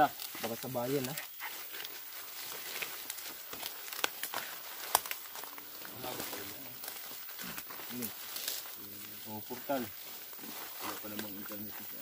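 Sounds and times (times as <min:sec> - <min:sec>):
rustling leaves and twigs: 0:00.0 - 0:12.0.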